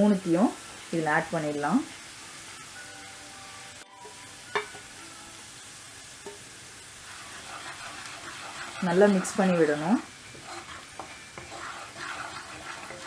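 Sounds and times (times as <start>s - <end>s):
oil sizzling with onions: 0.0s - 13.0s
wooden spatula stirring: 7.0s - 13.0s.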